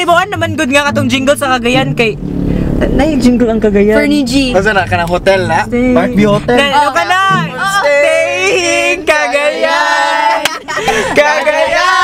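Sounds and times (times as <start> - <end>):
car rumble on the move: 0.0 - 9.5.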